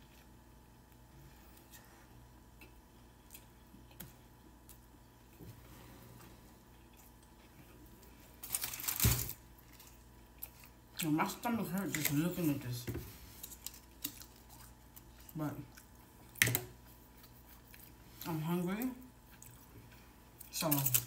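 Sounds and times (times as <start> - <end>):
person chewing food: 0.0 - 8.4, 9.4 - 11.0, 13.2 - 18.3, 19.0 - 21.0.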